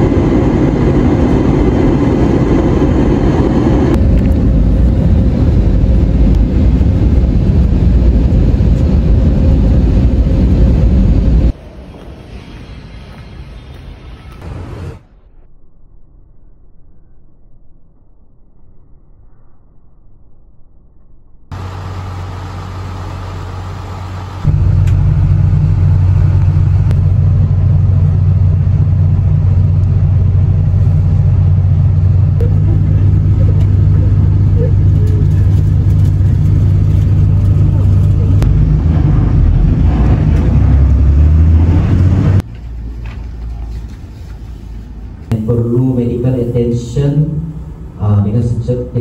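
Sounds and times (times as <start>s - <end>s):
vehicle engine and tyre rumble: 0.0s - 15.5s, 21.4s - 49.0s.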